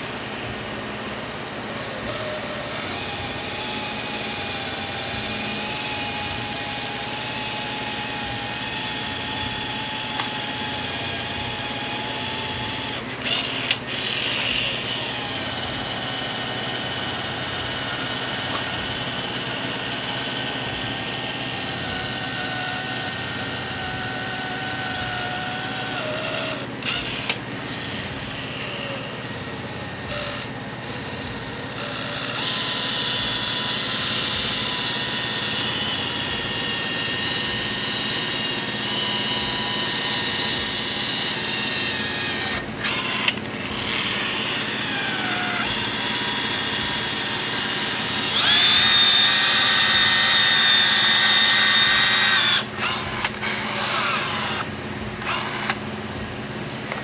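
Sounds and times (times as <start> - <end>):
cordless adhesive gun whining: 1.5 - 57.0.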